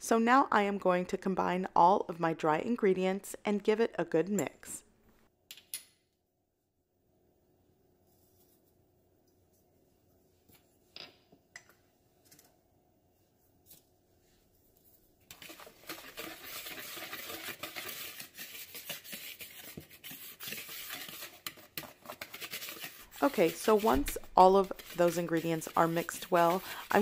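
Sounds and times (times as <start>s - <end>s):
whisk mixing in plastic bowl: 15.3s - 27.0s.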